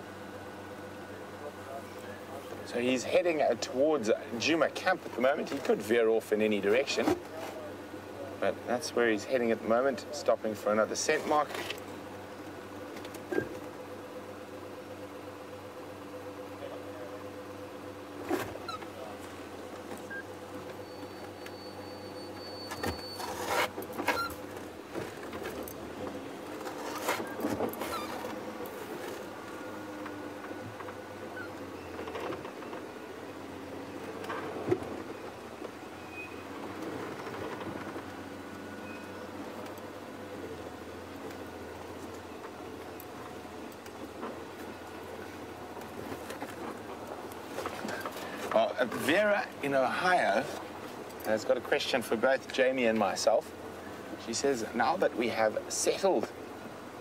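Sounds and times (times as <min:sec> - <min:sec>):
vehicle engine at low revs: 0:00.0 - 0:57.0.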